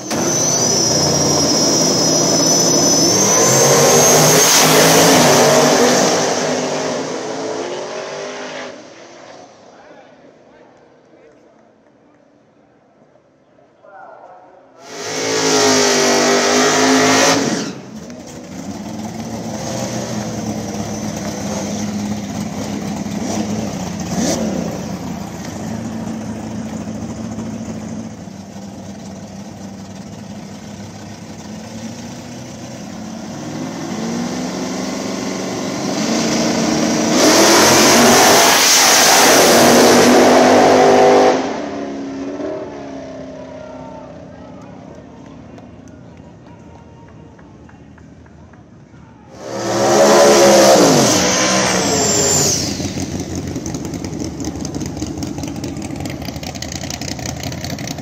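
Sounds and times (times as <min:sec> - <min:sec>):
race car engines at full throttle: 0:00.0 - 0:11.4, 0:14.8 - 0:58.0.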